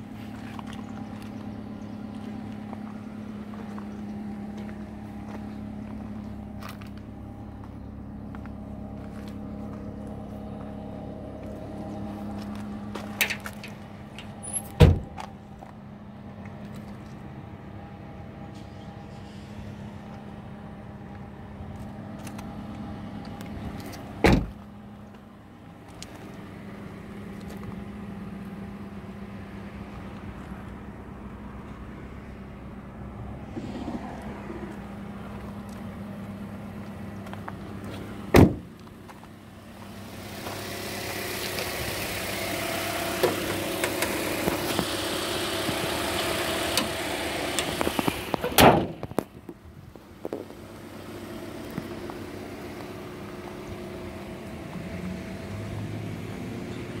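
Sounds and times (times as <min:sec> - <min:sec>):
car doors shutting: 0:12.9 - 0:15.3, 0:24.2 - 0:24.6, 0:38.3 - 0:38.7, 0:46.6 - 0:49.3.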